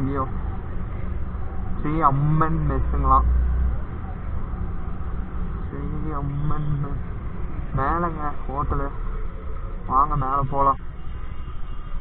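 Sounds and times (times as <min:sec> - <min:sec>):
man talking: 0:00.0 - 0:00.3, 0:01.8 - 0:03.4, 0:05.6 - 0:07.1, 0:07.7 - 0:08.9, 0:09.9 - 0:10.8
road noise: 0:00.0 - 0:12.0.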